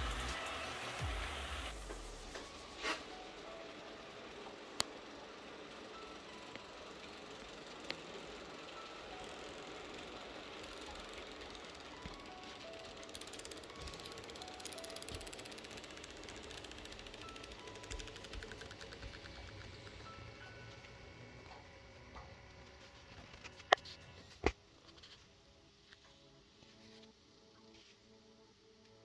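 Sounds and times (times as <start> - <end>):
model train rolling on track: 0.0 - 24.1
faint music: 0.0 - 29.0
wheels ticking over rail joints: 3.2 - 22.7.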